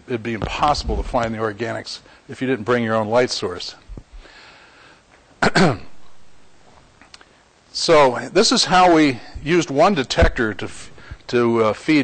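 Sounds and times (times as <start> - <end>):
man clearing throat: 5.4 - 6.0.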